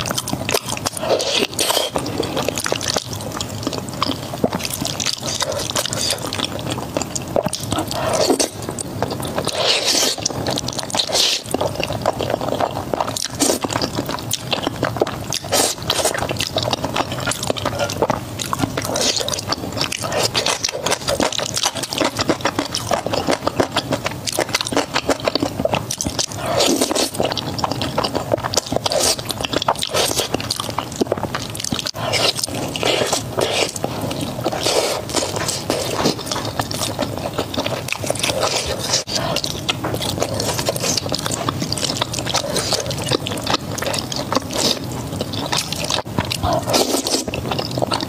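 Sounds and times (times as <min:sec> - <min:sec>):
wet chewing and smacking: 0:00.0 - 0:48.0
slurping noodles: 0:00.7 - 0:48.0.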